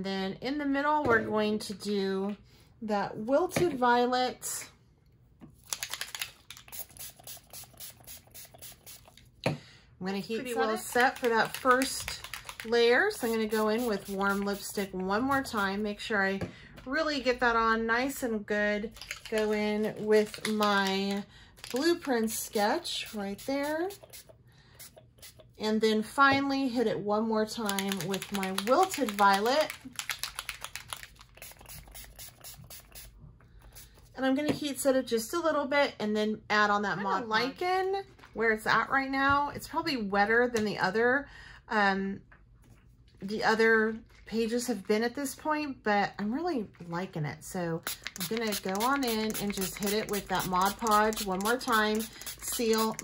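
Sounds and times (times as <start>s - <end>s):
pump spray bottle spritzing: 5.6s - 9.3s, 10.8s - 15.6s, 22.5s - 25.6s, 27.7s - 34.0s, 47.8s - 53.0s.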